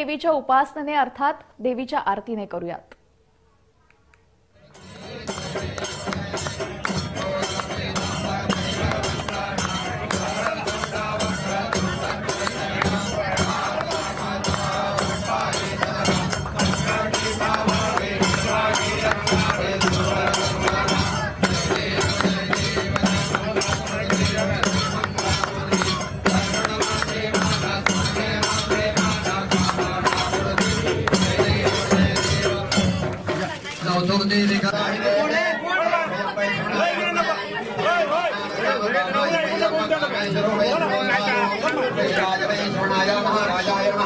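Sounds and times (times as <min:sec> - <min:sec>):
devotional music: 0:04.7 - 0:35.6.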